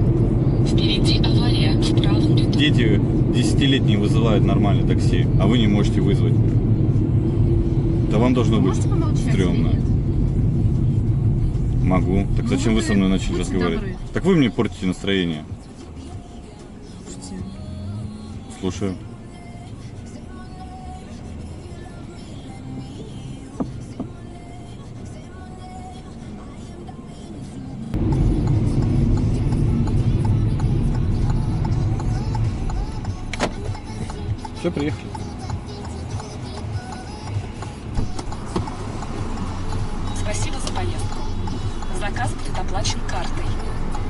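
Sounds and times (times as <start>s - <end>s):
car engine and tyre noise: 0.0s - 44.0s.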